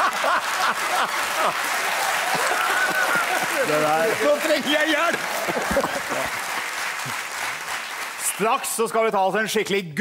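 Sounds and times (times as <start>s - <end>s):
audience applauding: 0.0s - 9.0s
man laughing: 5.4s - 6.3s.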